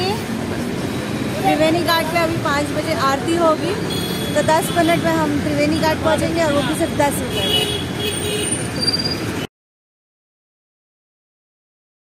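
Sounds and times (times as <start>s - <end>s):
roadside traffic: 0.0s - 9.5s.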